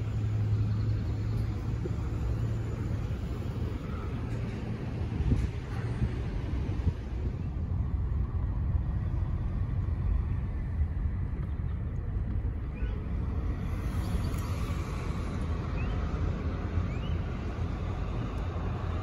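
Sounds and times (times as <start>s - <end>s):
car engine and tyres rumble: 0.0s - 19.0s.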